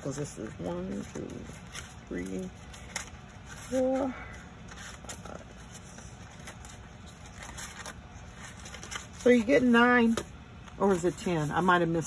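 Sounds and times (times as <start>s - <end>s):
low steady background hum: 0.0s - 12.0s
paper banner rustling: 0.0s - 12.0s.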